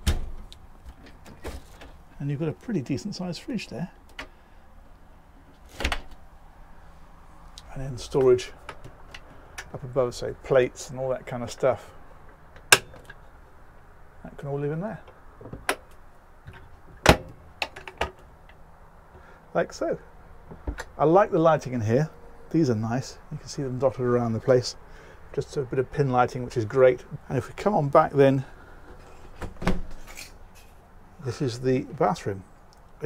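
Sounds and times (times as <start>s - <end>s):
cupboard door snapping shut: 0.0s - 0.4s, 29.4s - 29.9s.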